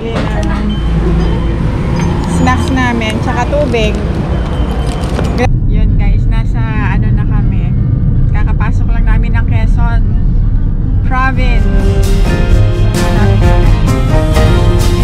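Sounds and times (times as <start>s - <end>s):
wind: 0.0s - 11.2s
car cabin road rumble: 0.0s - 12.2s
traffic noise: 0.0s - 15.0s.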